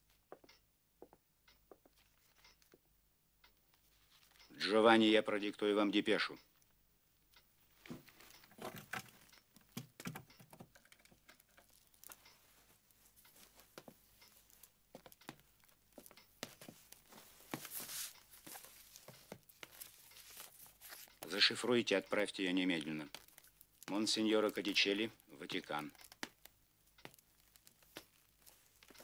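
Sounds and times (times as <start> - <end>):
paper rustling: 16.0 - 21.6, 23.0 - 29.0.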